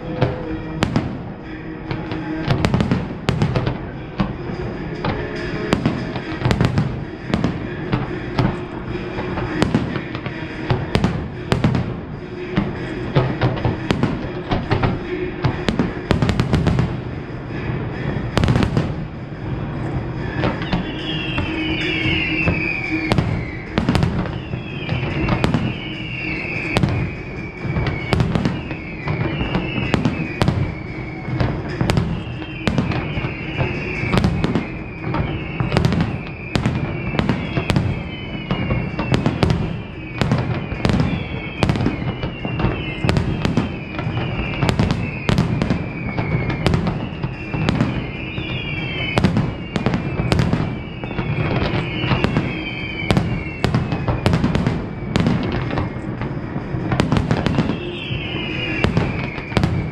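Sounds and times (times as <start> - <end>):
falling whistle-like tone: 0.0 - 59.9.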